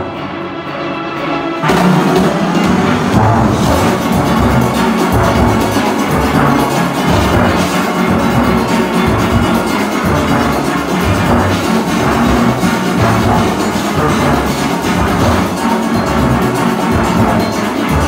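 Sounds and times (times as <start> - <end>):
steel orchestra playing: 0.0 - 18.0
bass steelpan notes: 1.6 - 18.0.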